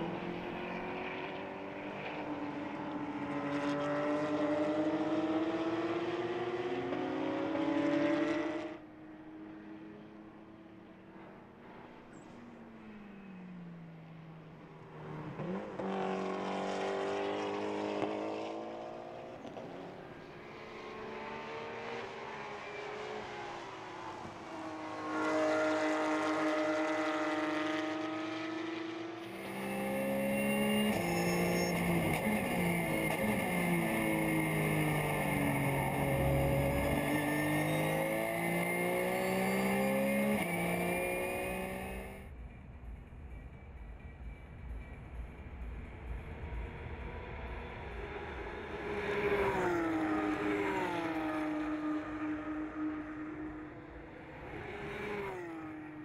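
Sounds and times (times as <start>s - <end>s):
race car engines at high revs: 0.0s - 42.3s, 45.8s - 56.0s.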